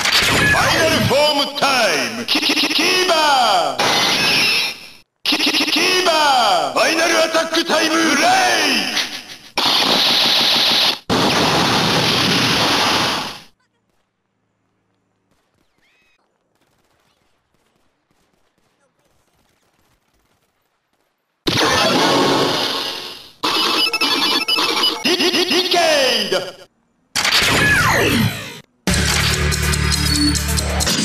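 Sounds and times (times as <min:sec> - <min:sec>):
rapid stuttering electronic effects: 0:03.8 - 0:06.0, 0:09.0 - 0:13.4, 0:21.5 - 0:25.8, 0:27.2 - 0:31.0
toy belt sound effects: 0:23.4 - 0:25.5.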